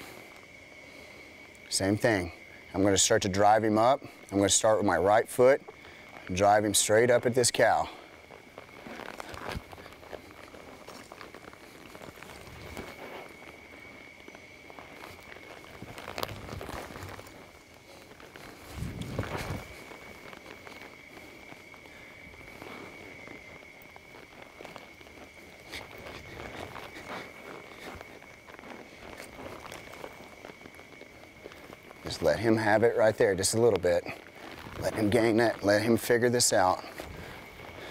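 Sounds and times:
hooves thudding in soft dirt: 0.0 - 37.9.

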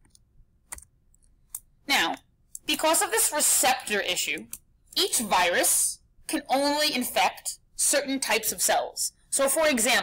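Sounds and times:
mouse clicks: 0.0 - 1.7, 4.3 - 4.7
person speaking: 1.5 - 10.0.

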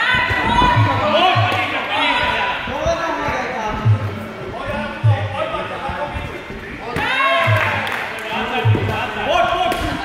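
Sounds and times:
strikes landing with dull thuds: 0.1 - 1.8
people shouting: 7.0 - 7.9.

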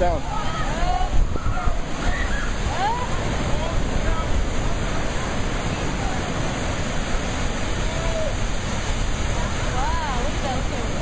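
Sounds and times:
ocean surf over rocks: 0.0 - 11.0.

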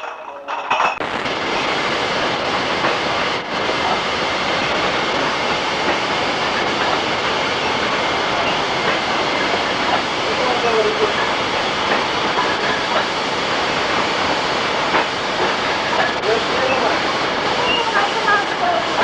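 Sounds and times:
bottling machine noise: 0.0 - 19.0.

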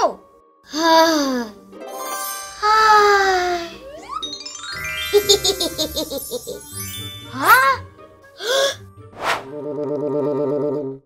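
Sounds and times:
cartoon whoosh: 9.2 - 10.8.

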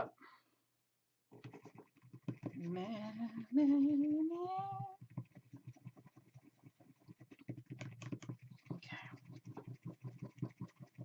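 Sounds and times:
stirrer clicking and scraping cup: 1.3 - 11.0.

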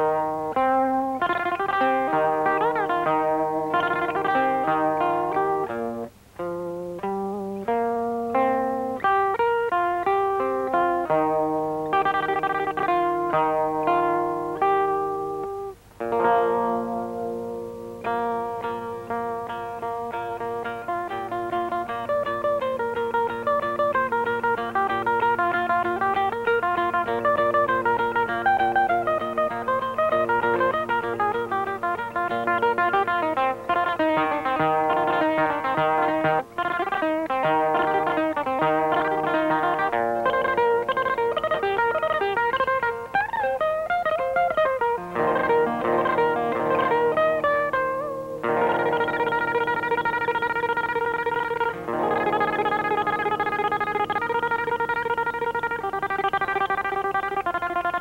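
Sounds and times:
plucked pipa melody: 0.0 - 58.0.

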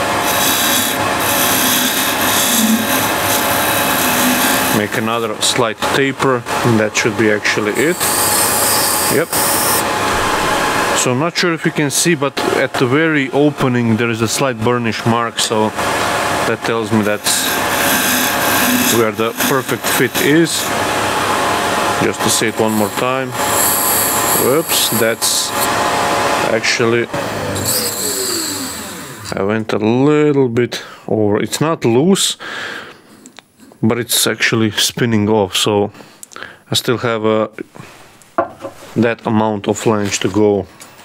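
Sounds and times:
lathe running: 0.0 - 11.1, 15.5 - 29.4
chisel cutting wood hiss: 0.2 - 4.9, 17.2 - 20.7
wood rubbing on wood: 0.2 - 5.4, 17.0 - 20.7.

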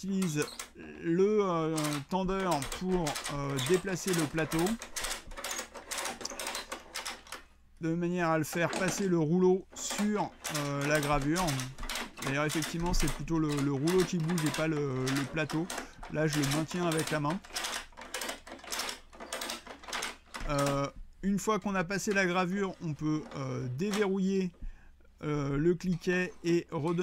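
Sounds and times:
ratchet strap clicking: 1.7 - 7.5, 9.8 - 21.0.

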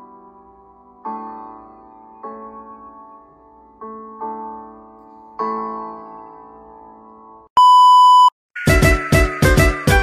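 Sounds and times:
loud electronic beep: 7.6 - 8.3
electronic music with a beat: 8.6 - 10.0.

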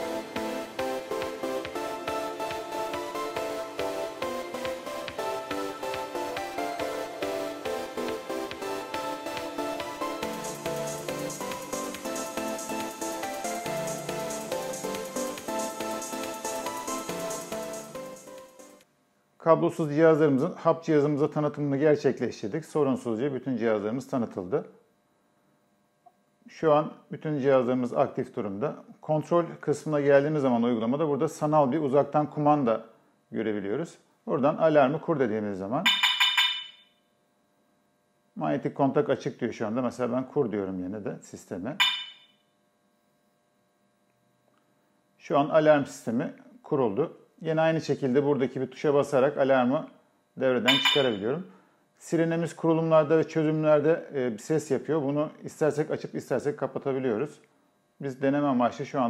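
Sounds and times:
electronic music with steady beat: 0.0 - 18.8, 35.9 - 36.6, 41.8 - 42.2, 50.7 - 51.2
alarm siren short high beeps: 41.8 - 42.3.

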